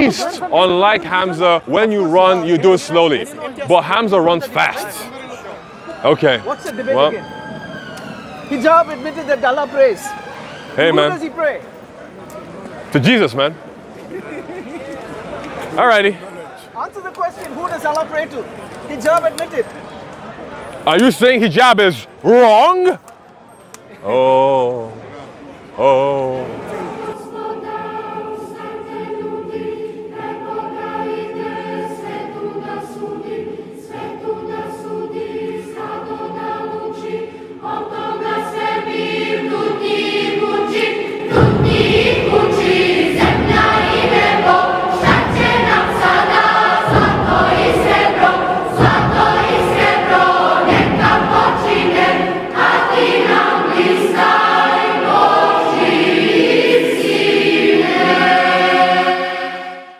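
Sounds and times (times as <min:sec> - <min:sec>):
choir singing held chords: 0:00.0 - 0:11.9, 0:25.8 - 0:59.9
deep accompaniment: 0:27.0 - 0:59.5.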